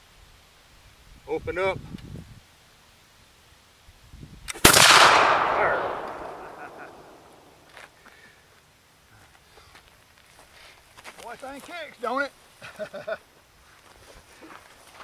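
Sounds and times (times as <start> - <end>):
musket shot: 4.5 - 7.5.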